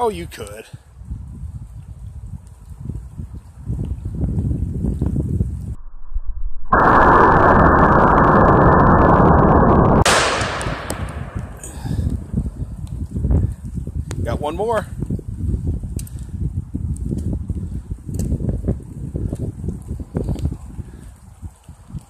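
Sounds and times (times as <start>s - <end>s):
distorted gunshot blast: 5.8s - 12.7s
sharp crack with echo: 6.1s - 12.9s.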